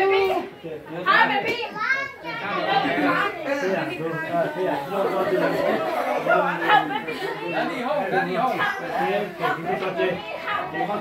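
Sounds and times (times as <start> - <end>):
roomful of people chattering: 0.0 - 11.0.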